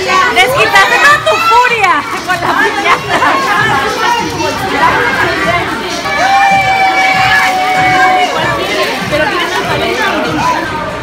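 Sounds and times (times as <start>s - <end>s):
background music: 0.0s - 11.0s
people chattering: 0.0s - 11.0s.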